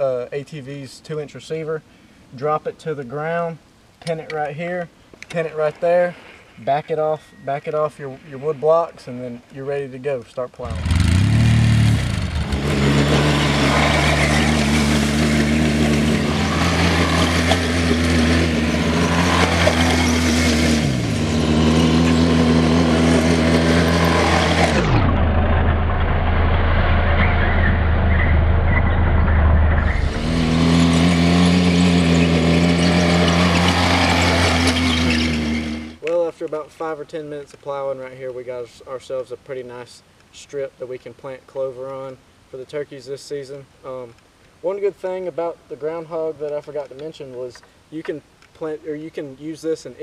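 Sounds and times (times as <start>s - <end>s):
atv engine running under load: 10.7s - 27.2s.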